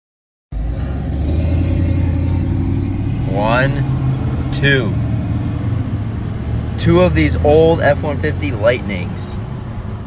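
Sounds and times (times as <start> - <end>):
road noise: 0.5 - 10.0
vehicle engine rumble: 0.5 - 10.0.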